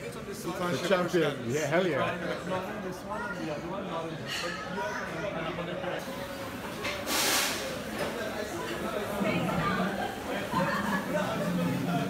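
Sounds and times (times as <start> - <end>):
background chatter: 0.0 - 12.0
loud burst of hissing: 7.1 - 7.8.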